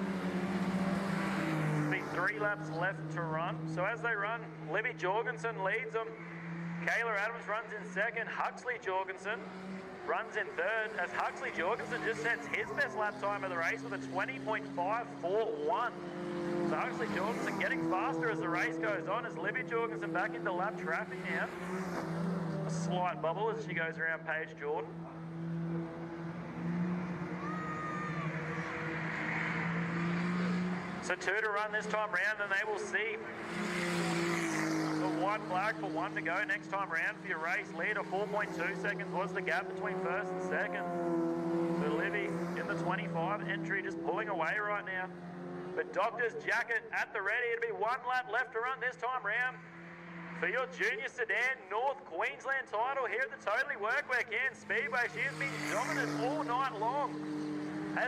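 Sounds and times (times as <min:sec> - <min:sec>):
race car engine running hard: 0:00.0 - 0:46.7, 0:49.5 - 0:50.7, 0:54.0 - 0:58.0.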